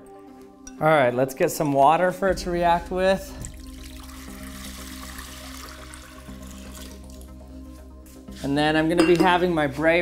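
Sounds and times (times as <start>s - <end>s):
background music sustained notes: 0.0s - 10.0s
water pouring into water: 3.4s - 7.3s.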